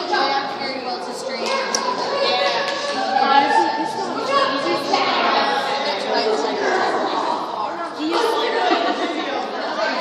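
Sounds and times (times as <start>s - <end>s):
people chattering in a hall: 0.0s - 10.0s.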